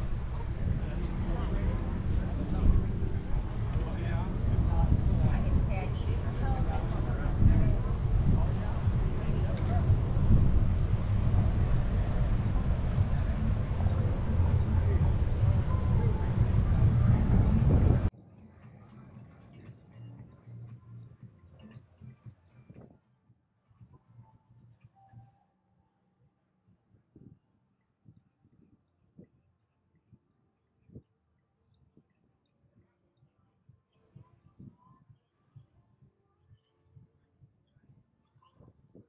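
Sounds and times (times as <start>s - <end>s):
faint low thuds: 0.0s - 18.1s
wind buffeting microphone: 0.0s - 18.1s.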